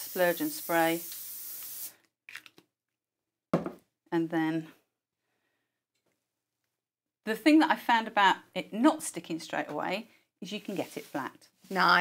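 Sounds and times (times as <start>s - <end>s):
aerosol spray hissing: 0.0s - 2.0s.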